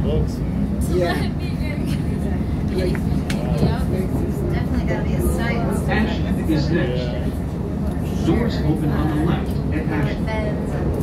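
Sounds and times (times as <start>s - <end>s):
people talking indistinctly: 0.0s - 11.0s
rail car rumble: 0.0s - 11.0s.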